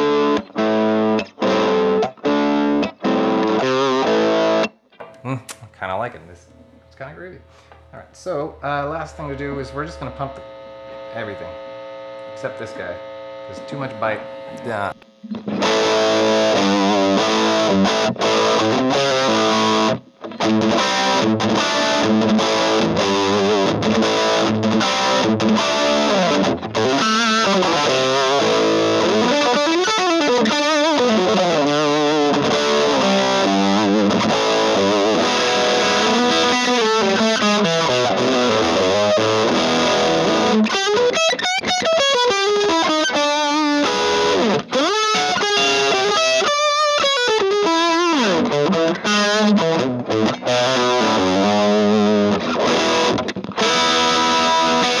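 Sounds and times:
overdriven electric guitar: 0.0s - 5.7s, 7.5s - 55.0s.

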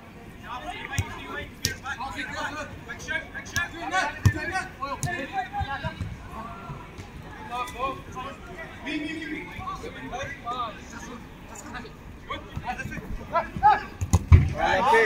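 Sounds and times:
players shouting and chatting: 0.0s - 15.0s
football being kicked: 3.5s - 6.1s, 13.5s - 14.5s.

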